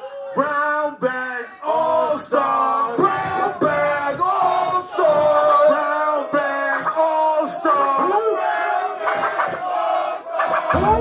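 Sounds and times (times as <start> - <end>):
men shouting and chanting: 1.3 - 11.0.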